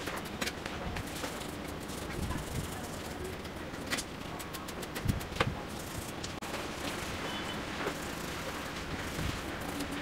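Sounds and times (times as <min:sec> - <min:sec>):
brush scrubbing chain: 0:00.9 - 0:03.5, 0:05.7 - 0:10.0.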